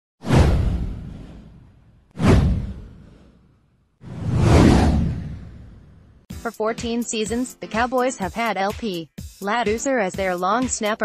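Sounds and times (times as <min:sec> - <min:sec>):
downward whoosh effect: 0:04.0 - 0:06.1.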